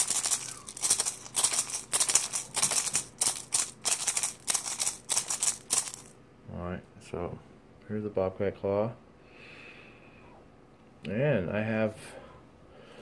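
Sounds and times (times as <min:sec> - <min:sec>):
shell rattle shaken: 0:00.0 - 0:06.2.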